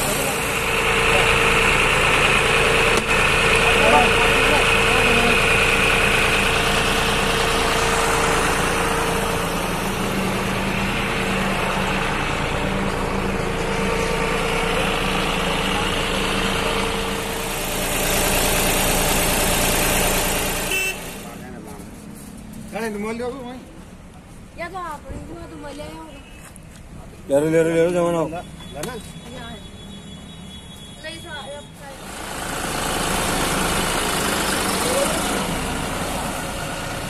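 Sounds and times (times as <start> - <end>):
tractor diesel engine running: 0.0 - 23.0, 31.7 - 37.0.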